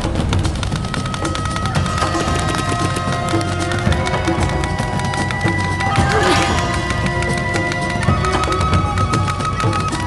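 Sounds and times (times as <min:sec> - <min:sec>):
music with steady beat: 0:00.0 - 0:10.0
wavering cry: 0:01.1 - 0:10.0.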